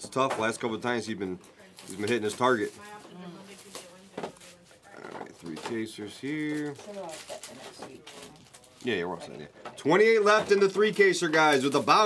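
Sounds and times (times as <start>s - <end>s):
low murmuring: 4.7s - 5.7s.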